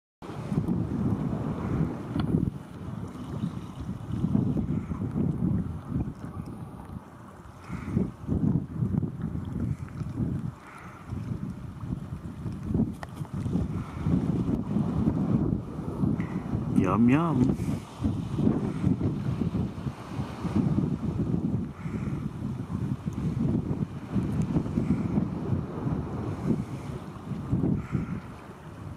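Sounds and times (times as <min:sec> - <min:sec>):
wind buffeting microphone: 0:00.2 - 0:28.9.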